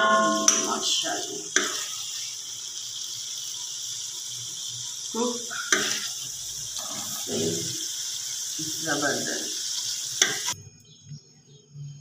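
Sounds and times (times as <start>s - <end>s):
chicken sizzling in a metal pot: 0.0s - 10.6s
metal utensil scraping: 6.8s - 7.7s.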